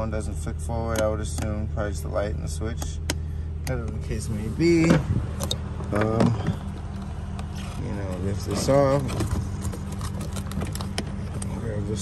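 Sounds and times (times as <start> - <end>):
car idling hum: 0.0 - 12.0.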